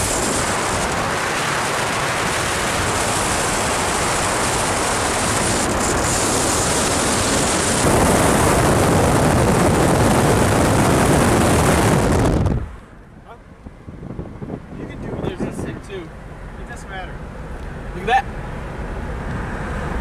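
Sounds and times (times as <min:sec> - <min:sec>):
wind rushing over microphone: 0:00.0 - 0:16.8
tyre and road noise: 0:00.0 - 0:20.0.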